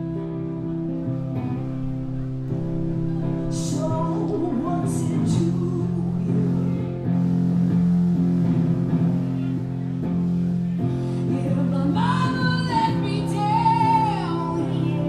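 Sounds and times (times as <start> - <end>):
electric guitar chords: 0.0 - 15.0
woman singing: 3.5 - 7.2, 10.9 - 15.0.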